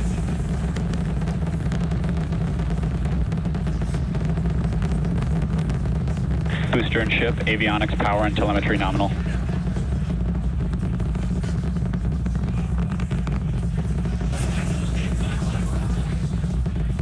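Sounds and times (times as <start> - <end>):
rocket engines deep rumble: 0.0 - 17.0.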